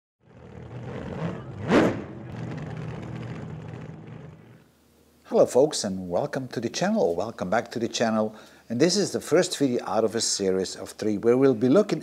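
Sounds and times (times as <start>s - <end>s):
car engine revving: 0.2s - 4.6s
car engine running: 0.2s - 4.6s.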